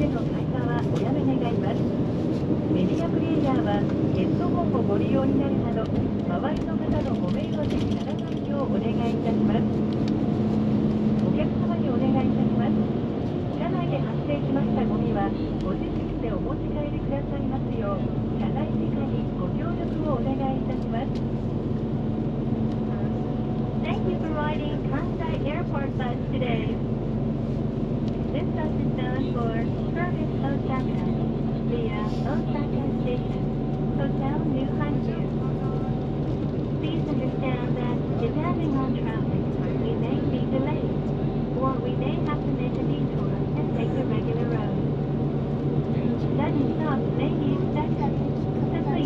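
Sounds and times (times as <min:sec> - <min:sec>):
bus engine drone: 0:00.0 - 0:49.0
deep rumble: 0:00.0 - 0:49.0
road noise: 0:00.0 - 0:49.0.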